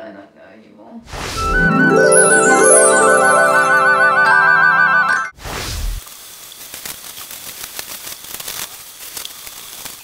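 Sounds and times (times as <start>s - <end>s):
shower water spraying: 5.5s - 10.0s.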